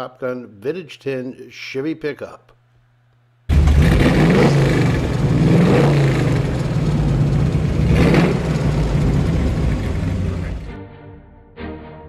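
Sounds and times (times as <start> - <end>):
engine revving loudly: 3.5 - 10.7.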